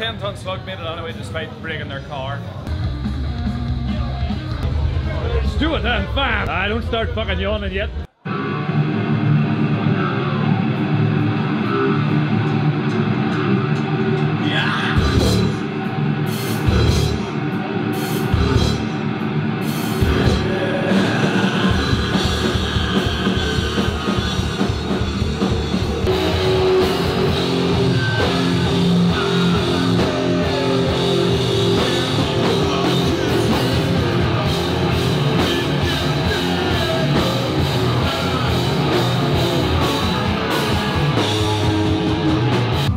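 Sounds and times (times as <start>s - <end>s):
heavy metal music: 0.0s - 42.9s.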